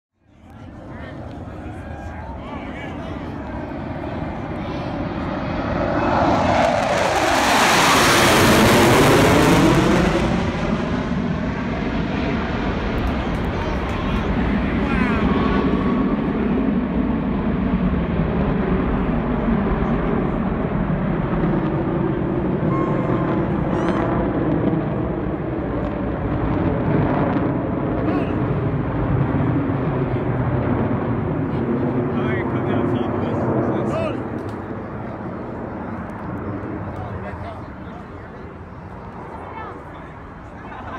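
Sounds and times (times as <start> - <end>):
jets roaring overhead: 0.3 - 40.9.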